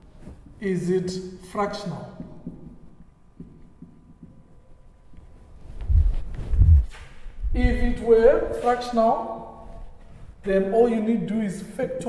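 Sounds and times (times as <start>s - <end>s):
marker knocking on whiteboard: 2.1s - 4.6s.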